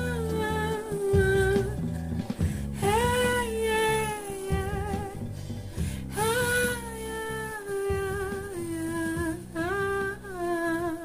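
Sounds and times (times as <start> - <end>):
woman humming: 6.2 - 11.0.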